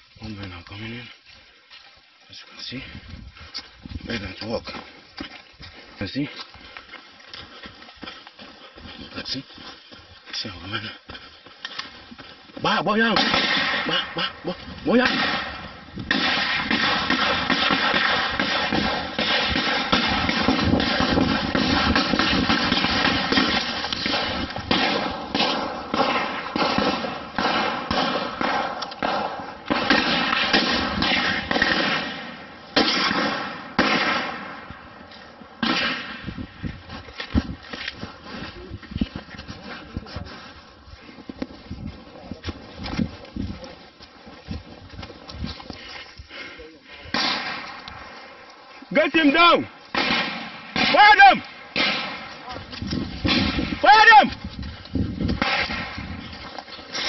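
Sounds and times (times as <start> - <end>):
gunshots: 12.7 - 34.7, 35.6 - 36.4, 47.1 - 47.8, 49.2 - 52.6, 53.2 - 54.2, 55.4 - 56.2.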